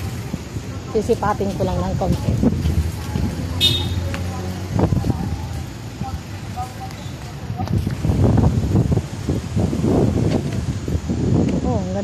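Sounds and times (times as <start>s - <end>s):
background voices: 0.0s - 12.0s.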